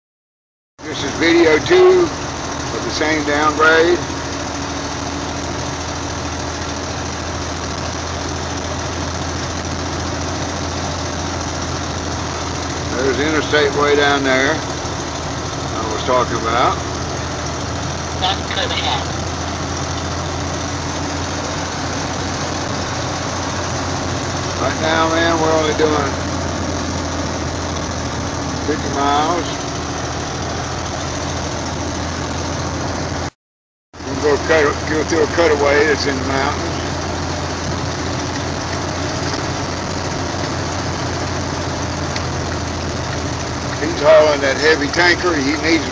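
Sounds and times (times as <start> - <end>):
tyre and road noise: 0.8 - 33.3, 34.0 - 45.9
truck engine drone: 0.8 - 33.4, 34.0 - 45.9
deep hum: 1.0 - 33.3.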